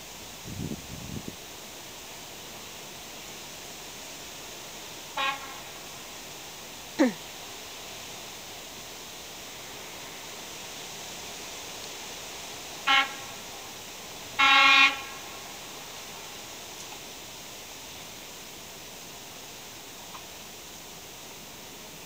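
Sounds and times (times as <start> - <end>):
steady outdoor hiss: 0.0 - 22.0
railcar horn blasts: 5.1 - 6.0, 12.8 - 15.7.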